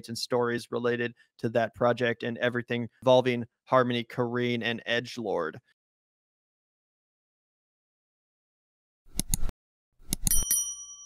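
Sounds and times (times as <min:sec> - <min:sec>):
quick clicks: 0:09.1 - 0:09.5
small bell ringing: 0:10.2 - 0:11.0.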